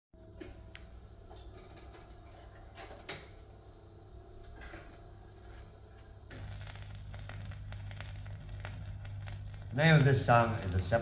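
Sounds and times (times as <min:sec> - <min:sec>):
low amplifier hum: 0:00.2 - 0:11.0
record groove crackling: 0:03.9 - 0:11.0.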